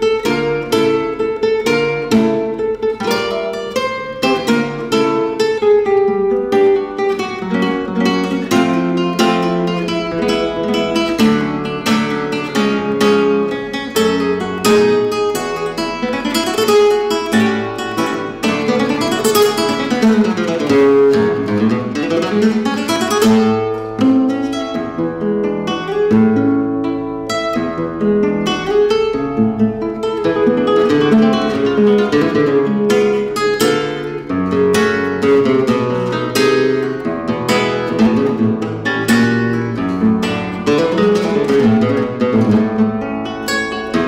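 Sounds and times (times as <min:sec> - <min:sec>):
flamenco nylon-string guitar: 0:00.0 - 0:44.0.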